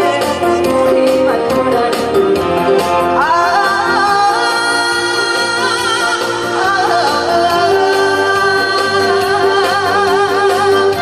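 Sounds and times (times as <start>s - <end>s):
instrumental accompaniment: 0.0s - 11.0s
woman singing into a microphone: 0.0s - 11.0s.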